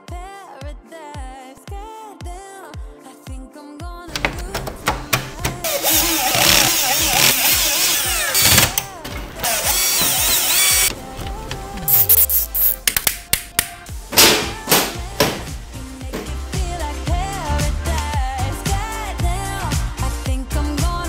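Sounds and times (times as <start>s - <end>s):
pop music: 0.0s - 21.0s
cordless drill running: 5.6s - 10.9s
clicks and knocks of hands: 12.8s - 13.8s.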